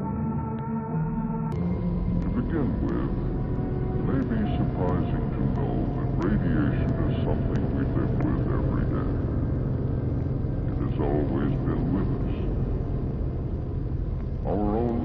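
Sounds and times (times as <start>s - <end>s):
low hum and rumble: 1.6s - 15.0s
wordless voice sounds: 2.2s - 9.5s, 10.7s - 12.6s, 14.4s - 15.0s.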